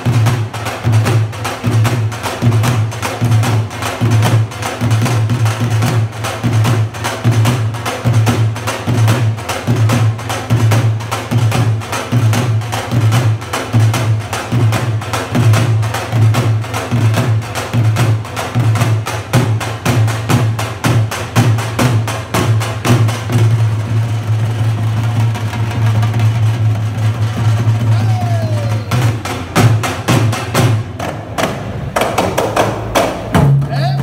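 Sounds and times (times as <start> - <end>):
drums beaten in fast rhythm: 0.0 - 34.0
hand drums: 0.0 - 34.0.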